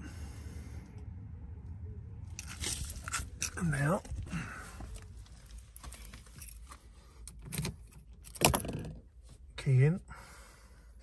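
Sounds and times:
low steady rumble: 0.0 - 11.0
gravel crunching underfoot: 2.4 - 6.7.

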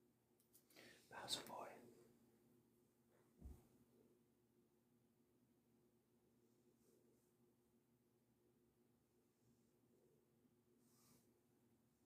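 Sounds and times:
faint whisper: 0.7 - 2.2.

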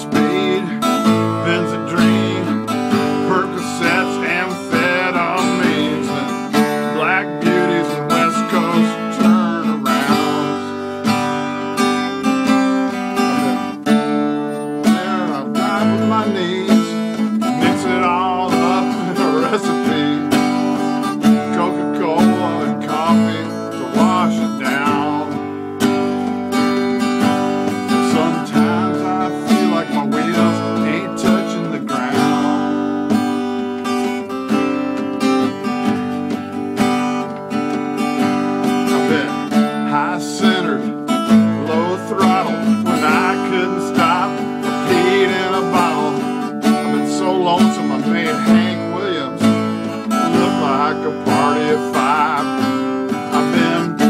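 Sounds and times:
acoustic guitar strumming: 0.0 - 54.0.

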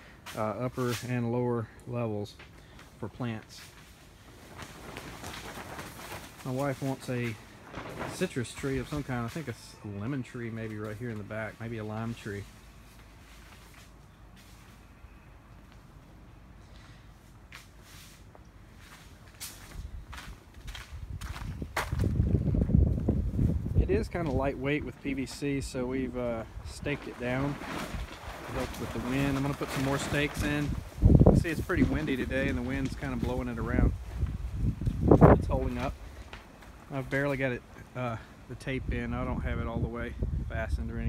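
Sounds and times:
plastic sheeting rustling in wind: 0.0 - 16.0, 16.6 - 41.0
footsteps on plastic tarp: 2.8 - 9.6, 10.2 - 14.9, 17.2 - 37.9
wind buffeting microphone: 19.7 - 36.2, 38.7 - 41.0.

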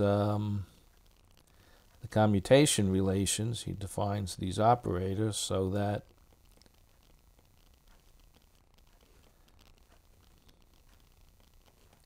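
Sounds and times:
faint low hum: 0.0 - 12.0
stylus ticking on tablet screen: 0.8 - 2.1, 5.4 - 12.0.

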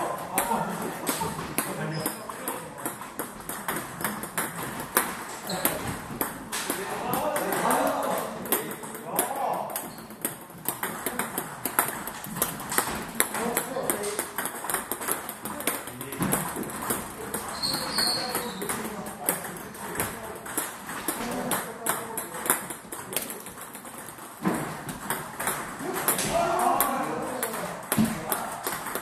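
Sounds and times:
players' voices: 0.0 - 3.3, 4.0 - 29.0
table tennis ball clicks: 8.4 - 26.2.

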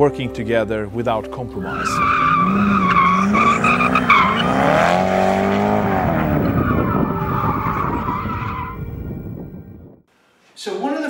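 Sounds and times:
tyres squealing on tarmac: 1.6 - 9.0
car engine revving: 1.6 - 9.6.

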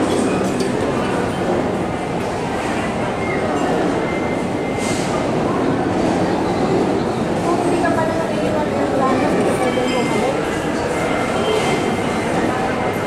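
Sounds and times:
indistinct voices: 5.1 - 13.0.

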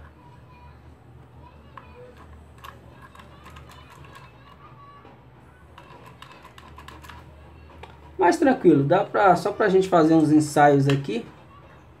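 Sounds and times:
plastic clicks and taps: 10.8 - 11.1.

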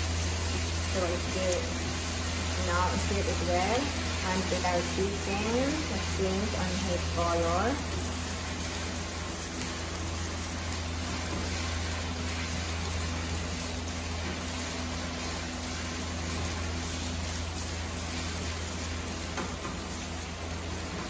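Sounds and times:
food sizzling in a pan: 0.0 - 21.0
steady low hum: 0.0 - 21.0.

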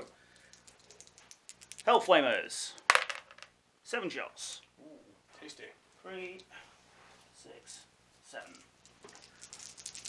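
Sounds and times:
dice clicking in hand: 0.5 - 1.9, 8.9 - 10.0.

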